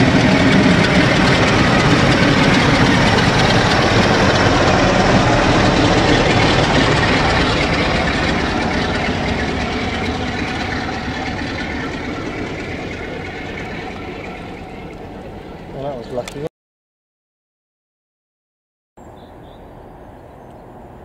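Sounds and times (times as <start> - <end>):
train coaches rolling over rails: 0.0 - 16.4
diesel locomotive engine running: 0.0 - 16.5.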